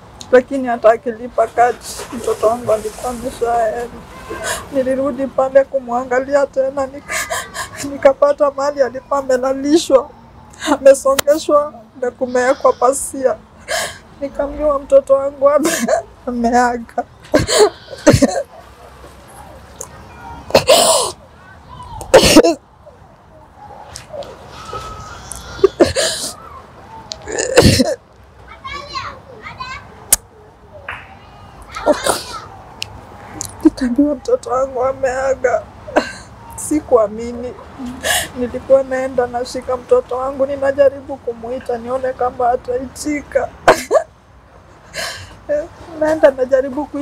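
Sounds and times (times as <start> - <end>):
woman speaking while crying: 4.4 - 18.4
woman sobbing: 15.6 - 16.1, 17.3 - 18.5, 22.1 - 22.6, 24.7 - 26.4, 27.2 - 28.0, 35.8 - 36.4, 43.6 - 44.1.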